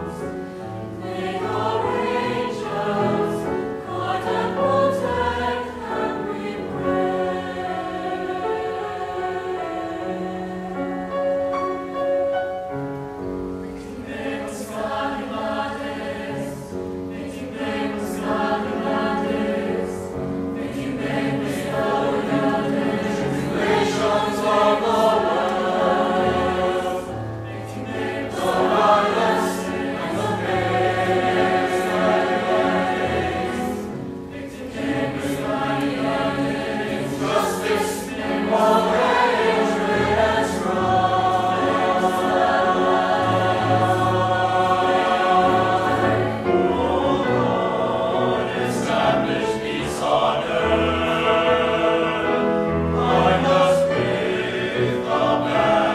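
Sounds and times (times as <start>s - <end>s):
choir singing in harmony: 0.0s - 55.9s
piano accompaniment: 0.0s - 55.9s.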